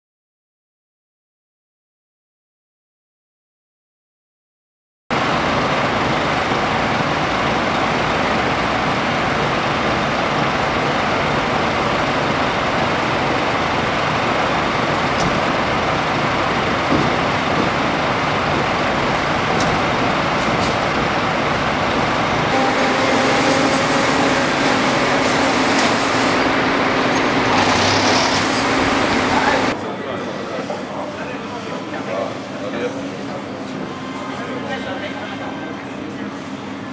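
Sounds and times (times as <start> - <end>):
fire engine running: 5.1 - 31.5.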